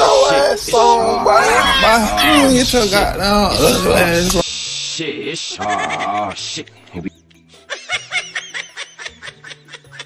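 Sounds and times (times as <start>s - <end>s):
background music with low notes: 2.2s - 10.0s
high-pitched snickering laugh: 5.6s - 6.4s.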